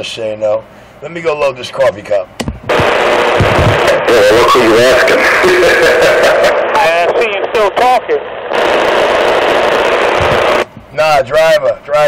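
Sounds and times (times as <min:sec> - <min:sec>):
radio static hiss: 0:02.7 - 0:12.0.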